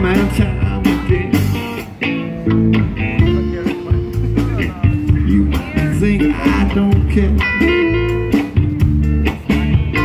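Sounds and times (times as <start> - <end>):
bass line: 0.0 - 10.0
electric guitars: 0.0 - 10.0.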